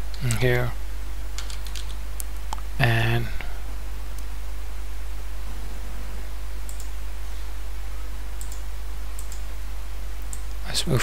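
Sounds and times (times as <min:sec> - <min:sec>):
steady low hum: 0:00.0 - 0:11.0
computer clicks: 0:01.4 - 0:02.6, 0:06.6 - 0:07.0, 0:08.4 - 0:09.5, 0:10.2 - 0:10.6.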